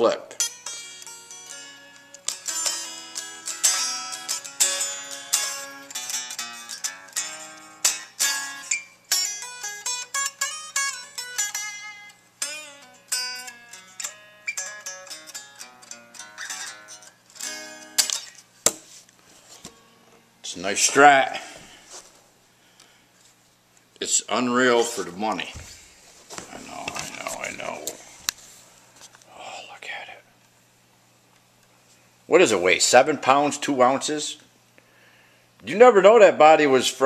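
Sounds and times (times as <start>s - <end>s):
electric guitar licks: 0.0s - 18.8s
low amp hum: 0.0s - 36.0s.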